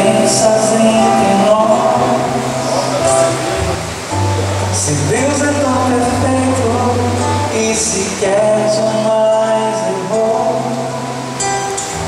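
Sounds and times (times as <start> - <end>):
low bass notes: 0.0 - 9.2
acoustic guitar: 0.0 - 12.0.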